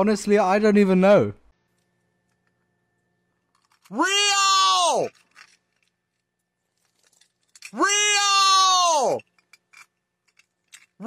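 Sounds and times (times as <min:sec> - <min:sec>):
man's falsetto cry: 0:03.9 - 0:05.1, 0:07.8 - 0:09.2.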